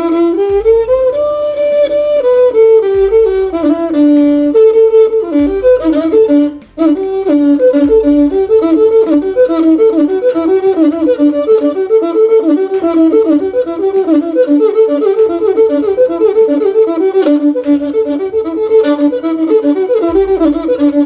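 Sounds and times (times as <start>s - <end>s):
bowed one-string fiddle melody: 0.0s - 21.0s.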